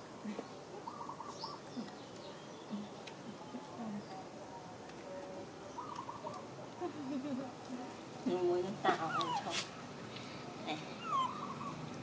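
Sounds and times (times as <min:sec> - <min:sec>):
monkeys whimpering squeaks: 0:09.0 - 0:09.5, 0:11.0 - 0:12.0.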